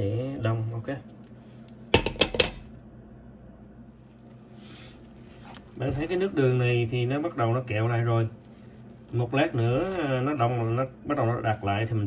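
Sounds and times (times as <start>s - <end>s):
kitchenware clinking: 1.9s - 2.7s.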